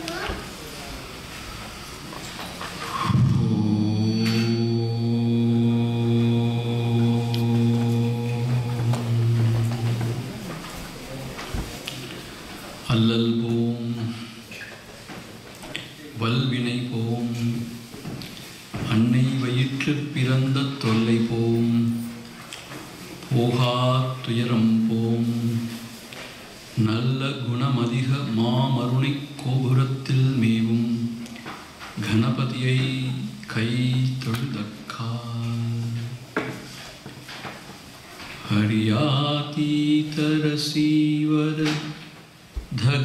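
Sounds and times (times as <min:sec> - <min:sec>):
man chanting a long low note: 0:02.9 - 0:10.6
man chanting: 0:02.9 - 0:11.2, 0:12.8 - 0:14.5, 0:16.1 - 0:17.8, 0:18.8 - 0:22.3, 0:23.2 - 0:25.8, 0:26.8 - 0:31.2, 0:32.0 - 0:36.2, 0:42.7 - 0:43.0.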